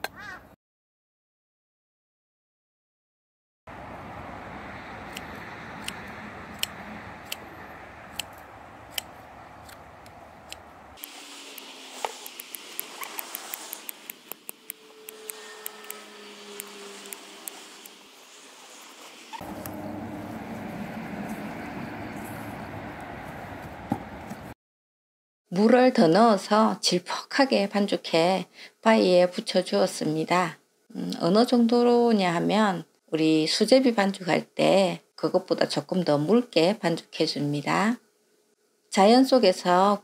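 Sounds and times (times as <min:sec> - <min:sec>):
scissors snipping dried moss: 0:05.1 - 0:07.4, 0:08.1 - 0:16.0.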